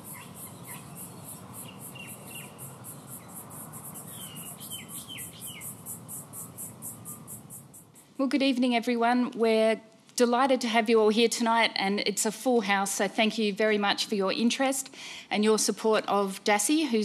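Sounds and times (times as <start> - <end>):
short falling bird calls: 0.0 - 8.0
crickets chirping: 0.0 - 8.2
low background hiss: 0.0 - 17.0.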